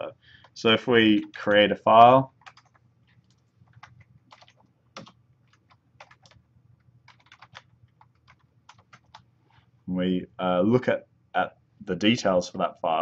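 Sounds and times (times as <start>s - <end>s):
typing on computer keyboard: 2.4s - 6.4s, 7.0s - 9.2s.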